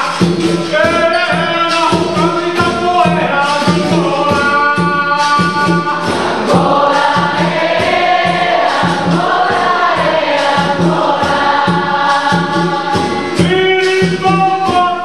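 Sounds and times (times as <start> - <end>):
berimbaus and pandeiros: 0.0 - 15.0
group singing together: 1.9 - 14.2.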